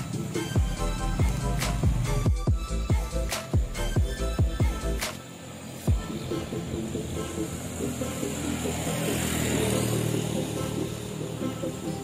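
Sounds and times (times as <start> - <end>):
background music: 0.0 - 12.0
road vehicle running: 0.0 - 12.0.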